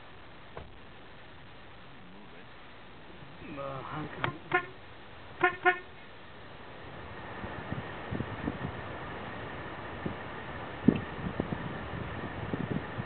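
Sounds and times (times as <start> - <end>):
horn tooting: 4.2 - 4.8, 5.4 - 6.0.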